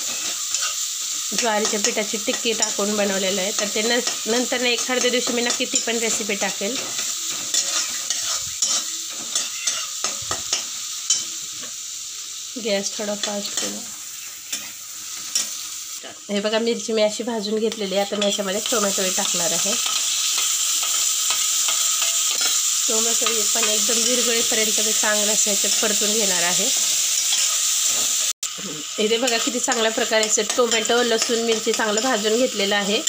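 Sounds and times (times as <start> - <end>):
garlic sizzling in hot oil: 0.0 - 33.0
metal spatula scraping pan: 6.8 - 11.2.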